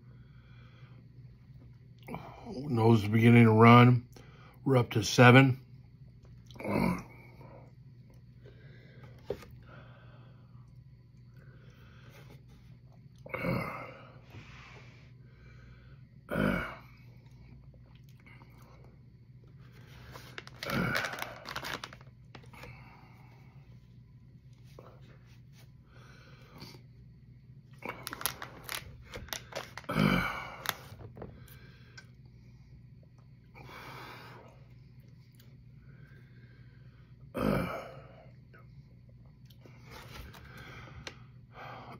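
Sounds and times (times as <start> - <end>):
steady low hum: 0.0 - 41.9.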